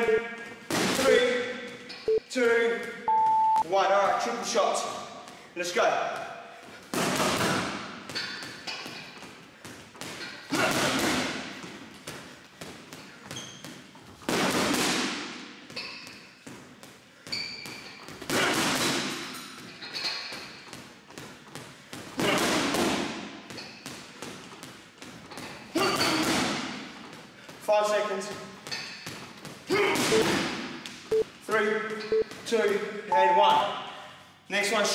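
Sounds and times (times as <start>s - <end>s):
gloves punching heavy bag: 6.1s - 16.9s, 17.7s - 19.3s, 20.4s - 27.6s.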